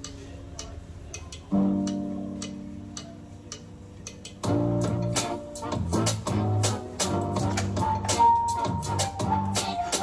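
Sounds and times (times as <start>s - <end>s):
light ticking: 0.0s - 4.5s.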